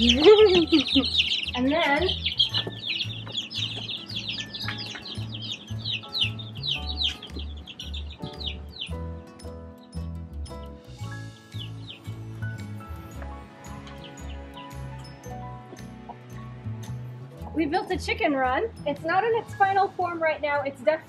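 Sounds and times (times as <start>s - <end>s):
chicks peeping: 0.0s - 10.1s, 11.1s - 16.5s.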